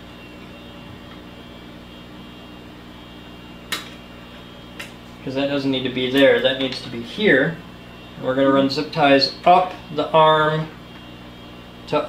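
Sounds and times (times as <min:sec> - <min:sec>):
room hum: 0:00.0 - 0:12.0.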